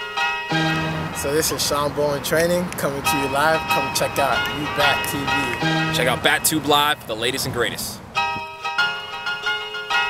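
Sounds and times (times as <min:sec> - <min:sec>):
bell-like chime notes: 0:00.0 - 0:01.2, 0:03.1 - 0:07.0.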